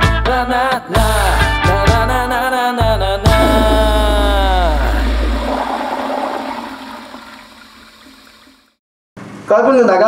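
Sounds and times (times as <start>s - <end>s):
deep boom with sliding tones: 3.3s - 7.2s.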